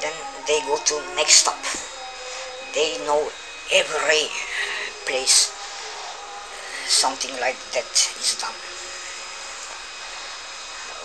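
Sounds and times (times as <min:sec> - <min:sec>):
faint thin whines: 0:00.0 - 0:11.0
steady background hiss: 0:00.0 - 0:11.0.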